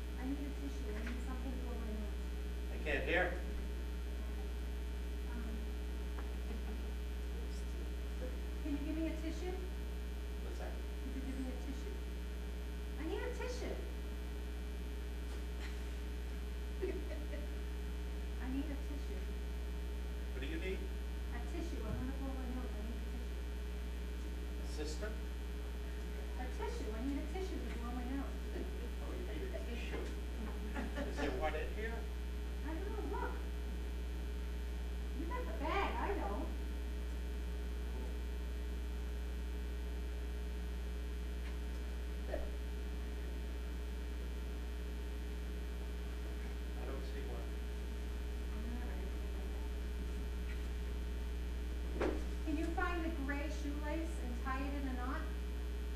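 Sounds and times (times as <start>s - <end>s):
electrical mains hum: 0.0s - 55.9s.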